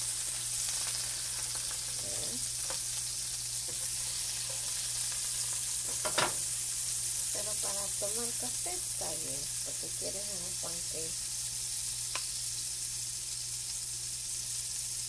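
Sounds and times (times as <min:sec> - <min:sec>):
pancake sizzling in a frying pan: 0:00.0 - 0:15.0.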